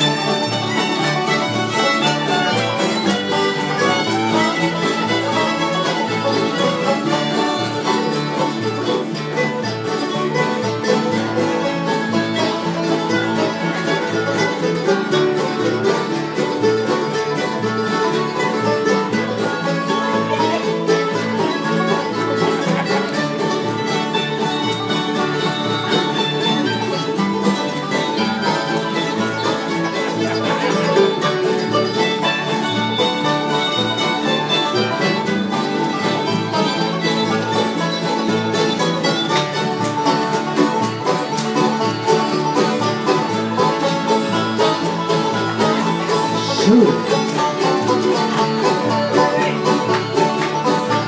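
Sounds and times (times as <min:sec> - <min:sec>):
bowed string: 0:00.0 - 0:51.0
guitar: 0:00.0 - 0:51.0
plucked banjo: 0:00.0 - 0:51.0.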